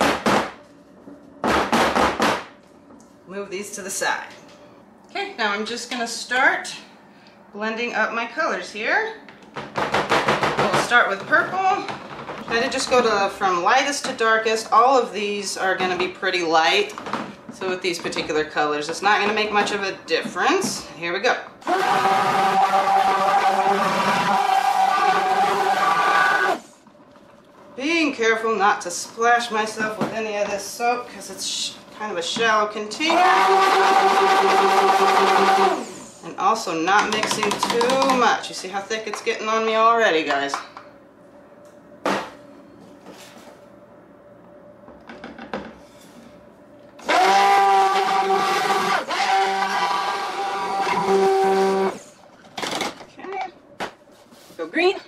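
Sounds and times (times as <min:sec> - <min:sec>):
stick blender motor whine: 0:21.6 - 0:26.6, 0:33.0 - 0:36.0, 0:47.0 - 0:52.2
blender knocking on pitcher: 0:37.0 - 0:38.3.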